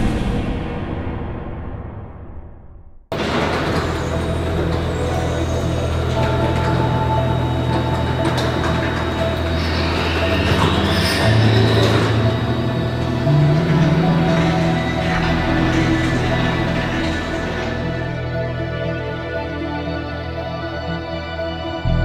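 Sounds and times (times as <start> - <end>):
background music with low notes: 3.1 - 22.0.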